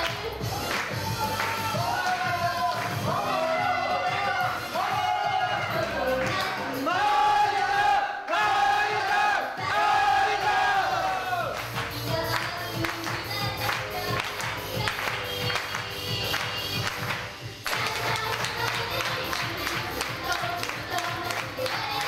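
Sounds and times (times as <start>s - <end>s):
female voices singing: 3.0s - 7.2s, 9.4s - 22.0s
pop backing track with beat: 11.0s - 22.0s.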